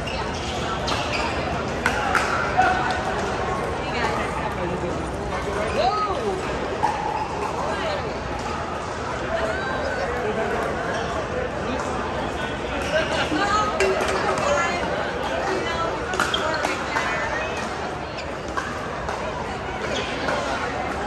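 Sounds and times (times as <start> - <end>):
echoing chatter of players: 0.0 - 21.0.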